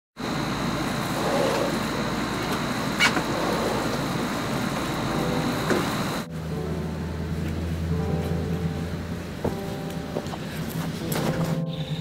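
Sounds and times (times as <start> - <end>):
faint constant high tone: 0.2 - 9.4, 11.3 - 12.0
low hum with hiss: 0.2 - 12.0.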